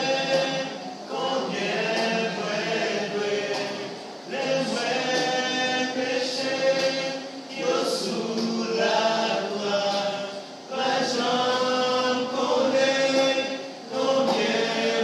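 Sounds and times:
men singing unaccompanied: 0:00.0 - 0:15.0.

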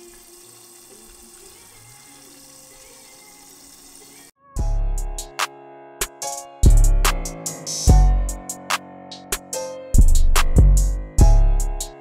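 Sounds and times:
fish frying in hot oil: 0:00.0 - 0:04.3
loud music with heavy beat: 0:06.1 - 0:12.0.

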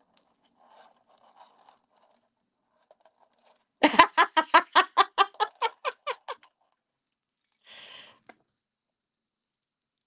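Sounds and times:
woman laughing: 0:03.8 - 0:06.4.

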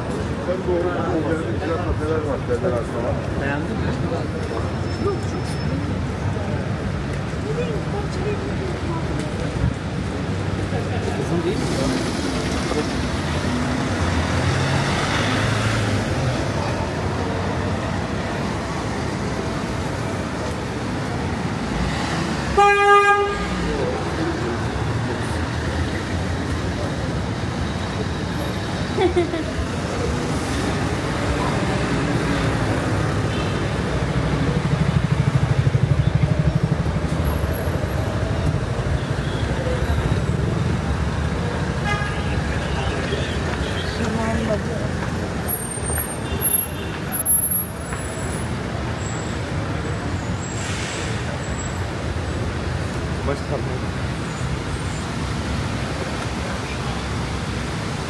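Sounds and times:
passers-by's voices: 0:00.0 - 0:58.0
passing car traffic: 0:00.0 - 0:58.0
vehicle engine rumble: 0:00.0 - 0:58.0.

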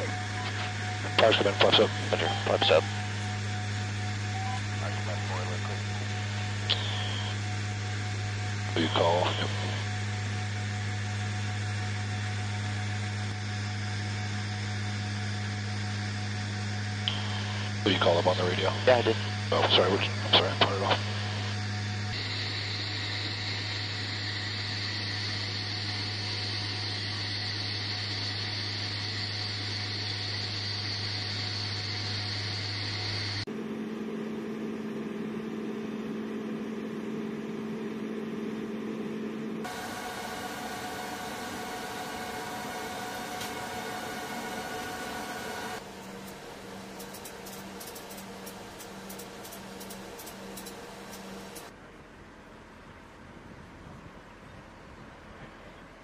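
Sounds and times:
faint regular pulsing: 0:00.0 - 0:33.5, 0:35.4 - 0:51.7
machinery humming: 0:00.0 - 0:51.8
turboprop engines droning in flight: 0:00.0 - 0:56.0.

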